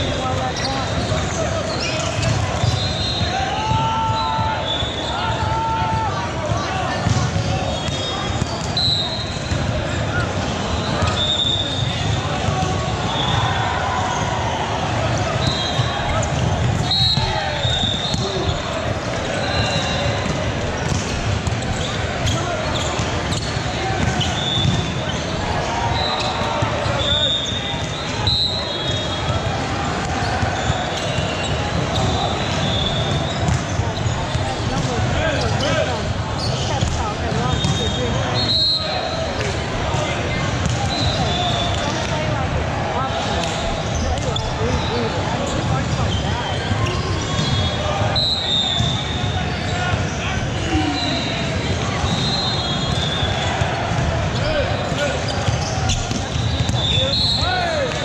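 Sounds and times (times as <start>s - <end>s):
many voices talking: 0.0s - 58.0s
volleyballs hit and bouncing: 0.0s - 58.0s.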